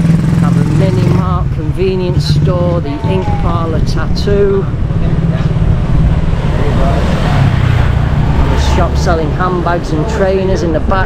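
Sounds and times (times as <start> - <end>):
low traffic rumble: 0.0 - 11.0
vehicle passing close by: 0.0 - 11.0.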